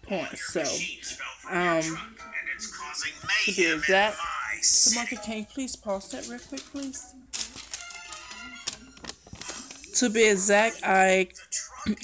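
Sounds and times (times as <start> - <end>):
faint cartoon music: 0.0 - 12.0.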